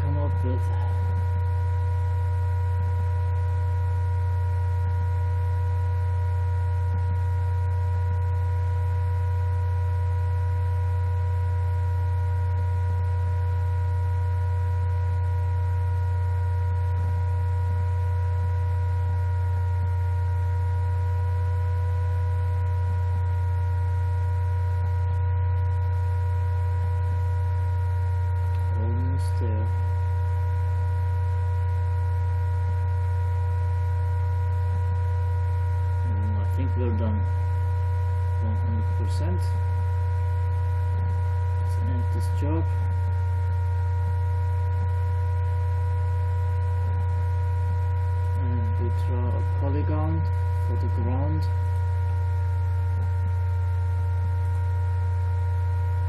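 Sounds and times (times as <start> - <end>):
laptop cooling fan humming: 0.0 - 56.0.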